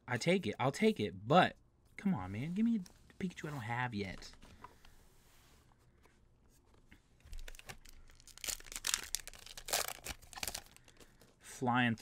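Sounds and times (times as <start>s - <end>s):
foil wrapper tearing and crinkling: 7.4s - 11.0s.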